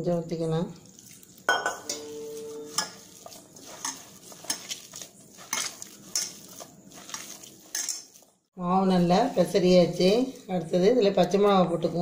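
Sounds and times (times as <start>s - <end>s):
hand squishing dough in bowl: 0.4s - 8.4s.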